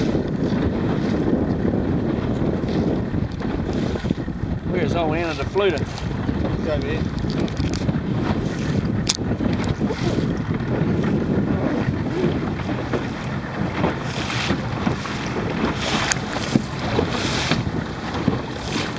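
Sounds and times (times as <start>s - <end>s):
choppy water: 0.0s - 18.9s
wind buffeting microphone: 0.0s - 18.9s.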